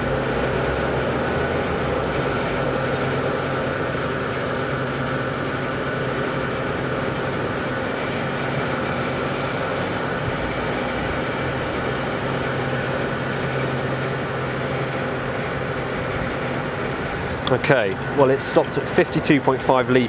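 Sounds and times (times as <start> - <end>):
fuel dispenser humming: 0.0 - 20.0.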